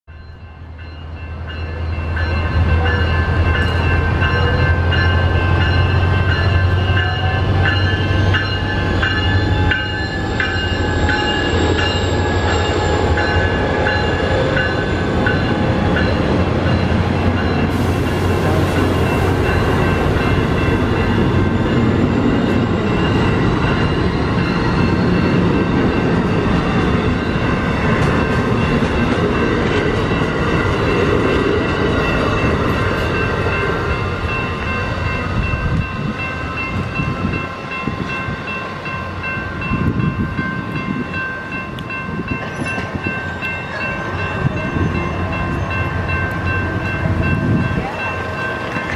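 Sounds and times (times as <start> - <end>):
passenger train passing: 0.1 - 48.9.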